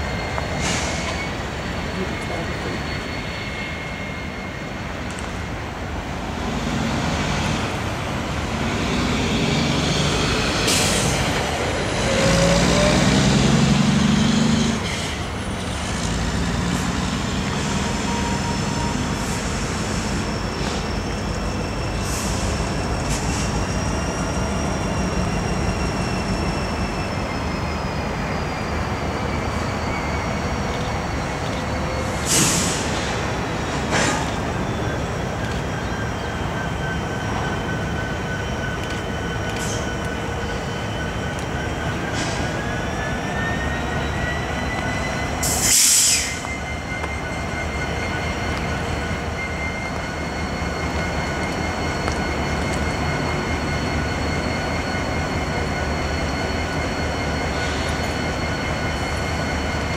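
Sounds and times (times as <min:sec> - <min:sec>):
diesel locomotive engine drone: 0:00.0 - 0:59.9
wheels squealing on rail: 0:00.0 - 0:59.9.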